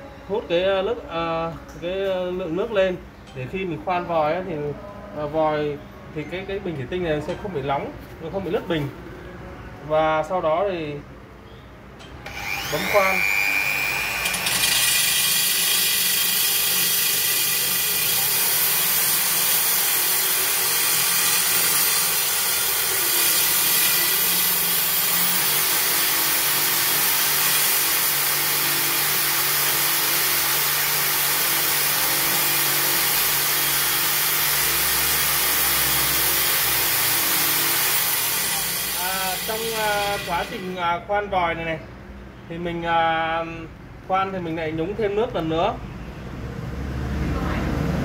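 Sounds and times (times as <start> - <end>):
electric drill grinding glass: 12.2 - 40.8.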